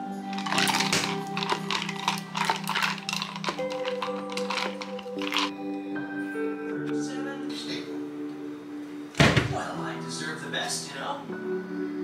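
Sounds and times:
background music with steady tones: 0:00.0 - 0:12.0
ice clinking in plastic cup: 0:00.3 - 0:05.5.

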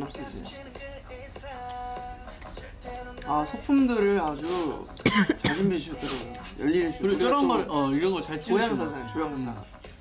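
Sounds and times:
young men speaking: 0:00.0 - 0:09.9
throat clearing: 0:05.0 - 0:05.7.

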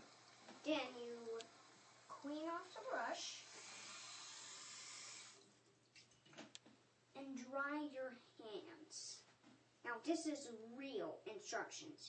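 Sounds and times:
sink tap running: 0:00.0 - 0:05.5.

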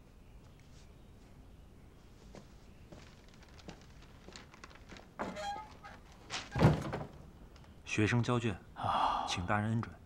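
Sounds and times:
paper rustle: 0:02.9 - 0:06.7.

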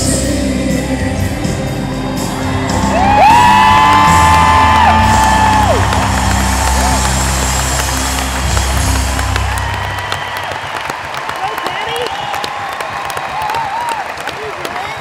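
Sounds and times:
live band holding a chord: 0:00.0 - 0:10.2
crowd whooping and cheering: 0:01.8 - 0:15.0.

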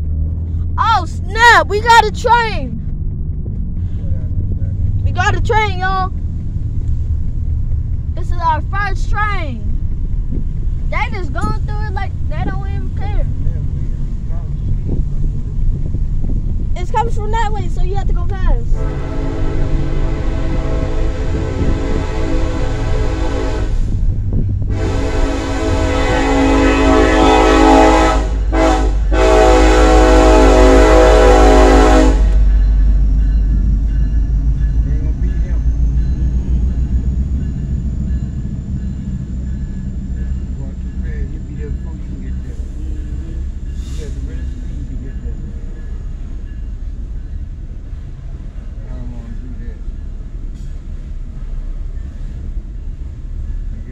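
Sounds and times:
passing train rumble: 0:00.0 - 0:53.9
locomotive air horn blasts: 0:18.8 - 0:24.1, 0:24.7 - 0:32.6.

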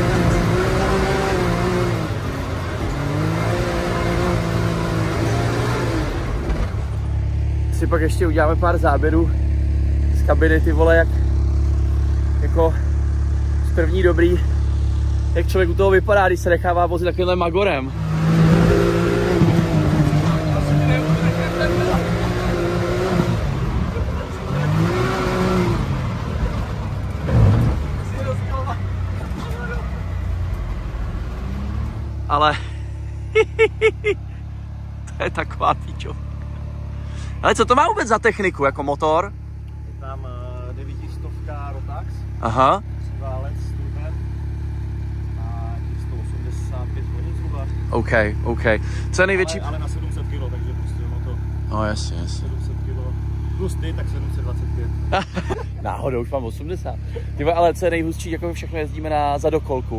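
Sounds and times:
engine idling: 0:06.2 - 0:18.0, 0:32.1 - 0:59.9.

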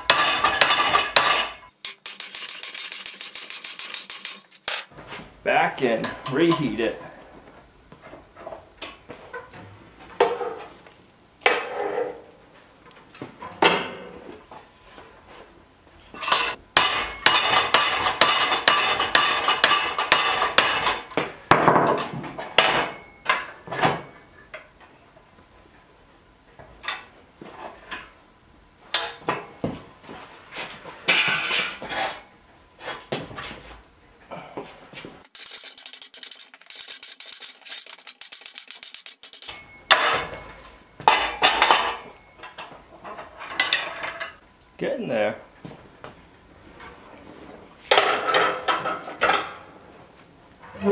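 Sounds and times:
steel bar clanking against metal: 0:00.0 - 0:04.9
rapid clattering clicks: 0:35.3 - 0:39.5.

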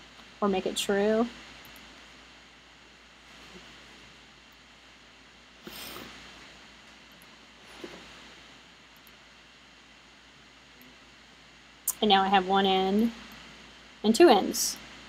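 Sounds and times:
faint steady hiss: 0:00.0 - 0:15.0
small clicks: 0:01.6 - 0:01.9.

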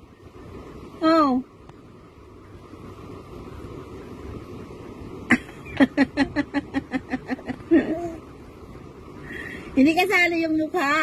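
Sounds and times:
person chuckling softly: 0:05.3 - 0:08.2.

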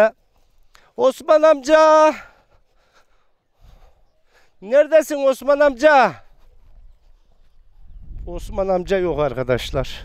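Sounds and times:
man shouting: 0:01.0 - 0:02.3.

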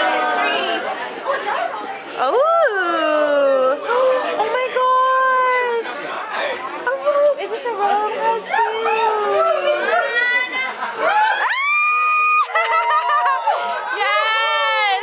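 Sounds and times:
people talking and exclaiming: 0:00.0 - 0:15.0.

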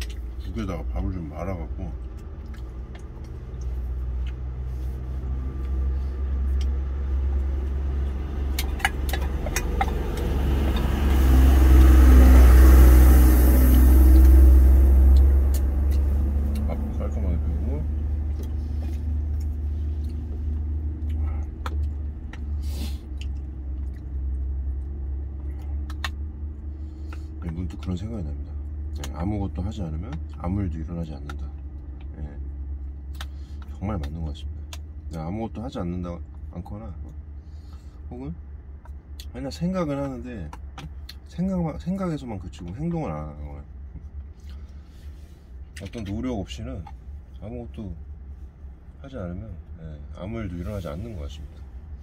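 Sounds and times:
passing vehicle: 0:00.0 - 0:35.6
low vehicle rumble: 0:00.0 - 0:52.0.

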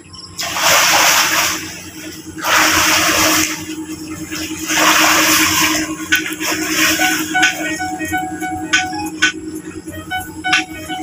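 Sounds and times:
sea water splashing: 0:00.4 - 0:11.0.

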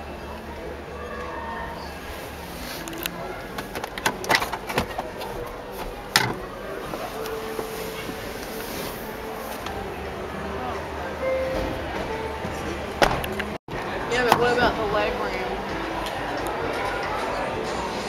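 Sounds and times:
murmur of voices: 0:00.0 - 0:18.0.

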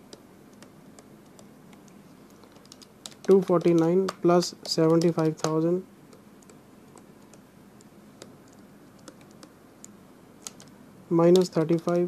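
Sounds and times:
stylus tapping on writing pad: 0:00.1 - 0:07.4
calculator keys clicking: 0:00.6 - 0:05.7.

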